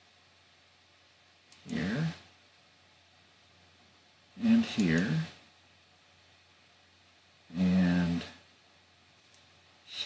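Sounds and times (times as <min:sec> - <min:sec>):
man's voice holding a wordless sound: 0:01.7 - 0:02.2, 0:04.4 - 0:05.4, 0:07.5 - 0:08.4.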